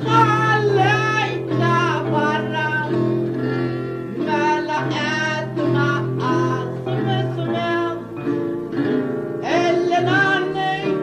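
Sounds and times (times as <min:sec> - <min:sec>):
guitar accompaniment: 0:00.0 - 0:11.0.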